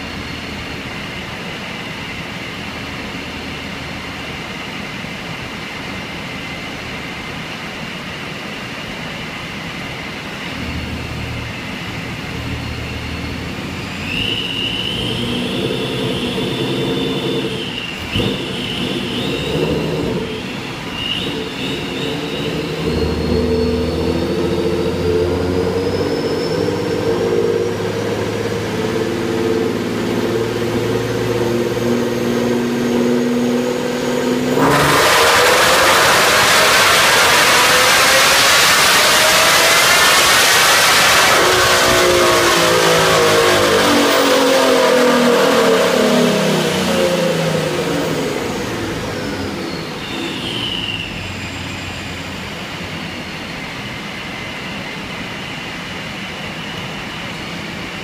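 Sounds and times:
car engine on dyno: 0.0 - 58.0
supercharger whine: 0.0 - 58.0
dyno rollers coasting: 10.4 - 54.9.

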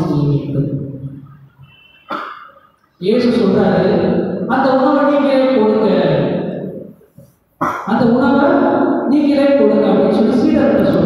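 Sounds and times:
man preaching: 3.0 - 6.7, 7.7 - 11.0.

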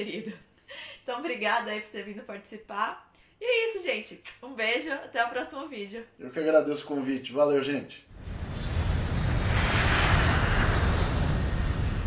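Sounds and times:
jet aircraft flyby: 8.1 - 12.0.

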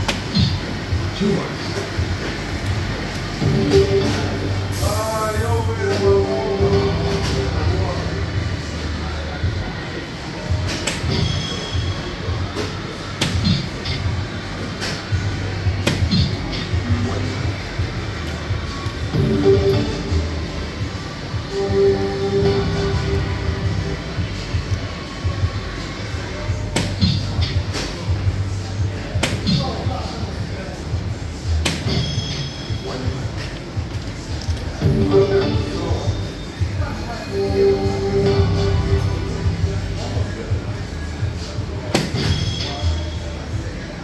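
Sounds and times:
voices: 0.0 - 44.0
background music: 2.0 - 9.6, 15.0 - 44.0
darts hitting the board: 15.8 - 16.2.

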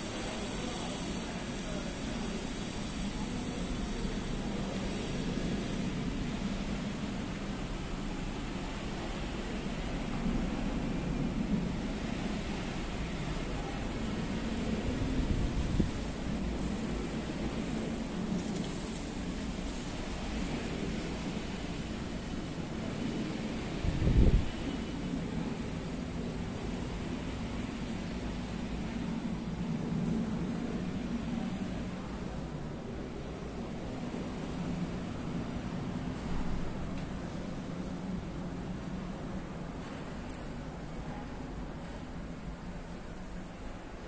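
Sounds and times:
low rumbling background noise: 0.0 - 44.0.

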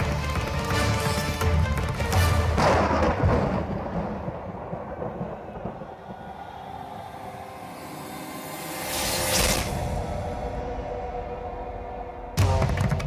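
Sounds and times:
low rumbling drone: 5.0 - 12.7
rising whoosh: 5.2 - 12.4.

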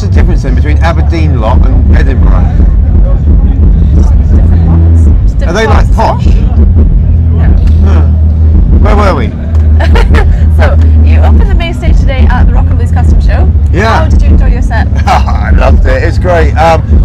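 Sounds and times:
loud low hum: 0.0 - 17.0
person talking: 10.6 - 16.0.

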